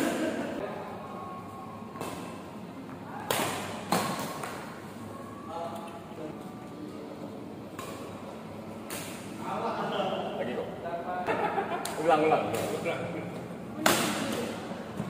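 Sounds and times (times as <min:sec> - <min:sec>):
rackets striking shuttlecock: 0:01.9 - 0:04.8, 0:07.7 - 0:08.2, 0:08.8 - 0:09.4, 0:13.8 - 0:14.7.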